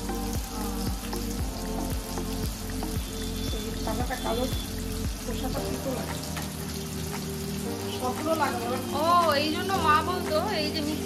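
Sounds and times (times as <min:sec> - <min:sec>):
background music with a beat: 0:00.0 - 0:11.0
tomatoes sizzling in hot oil: 0:00.0 - 0:11.0.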